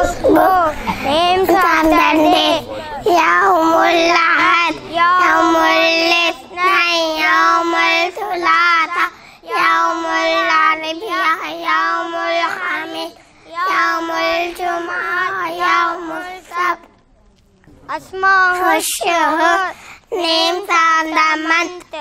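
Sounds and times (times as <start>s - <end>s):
child singing unaccompanied: 0.0s - 17.0s, 17.9s - 22.0s.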